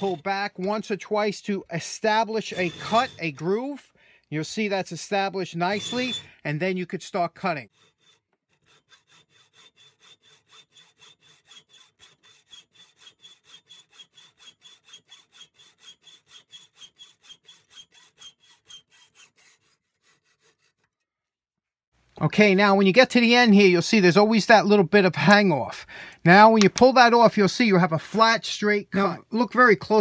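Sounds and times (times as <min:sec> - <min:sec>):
hacksaw cutting steel rod: 0:00.0 - 0:01.0, 0:01.8 - 0:03.8, 0:05.7 - 0:06.3, 0:07.7 - 0:21.0.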